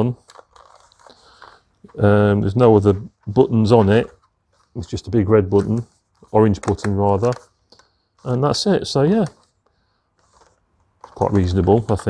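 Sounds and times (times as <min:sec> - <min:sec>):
rustling plastic pump handling: 0:00.0 - 0:12.0.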